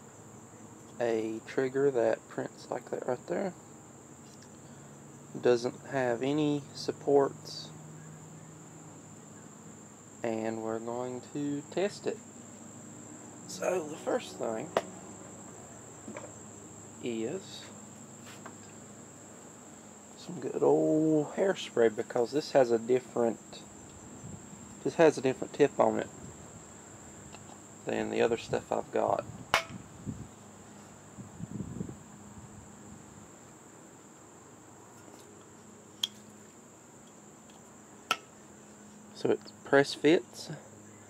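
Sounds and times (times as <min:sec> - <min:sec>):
crickets trilling: 0:00.0 - 0:41.0.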